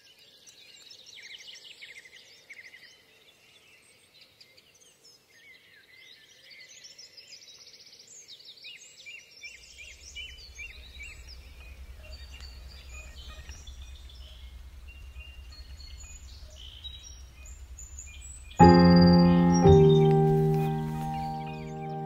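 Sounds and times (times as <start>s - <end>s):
birds chirping and trilling: 9.8s - 22.0s
steady low rumble: 10.2s - 22.0s.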